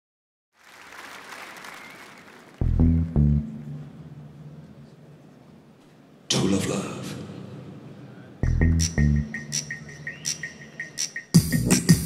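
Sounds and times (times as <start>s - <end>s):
audience applauding and cheering: 0.6s - 2.7s
deep bass notes: 2.6s - 4.4s, 8.4s - 9.6s.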